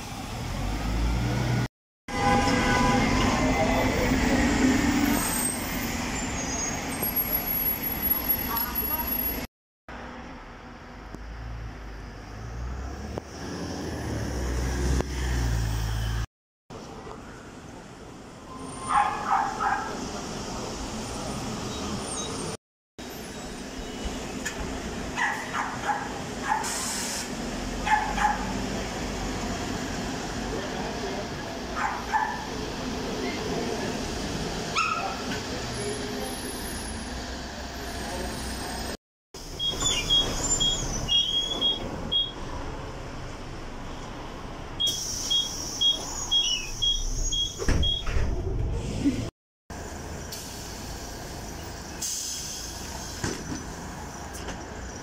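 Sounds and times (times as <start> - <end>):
buses running: 0.0 - 16.2, 16.8 - 55.0
hiss of air: 26.6 - 27.4, 50.2 - 53.3
high electronic beeps: 44.8 - 48.1.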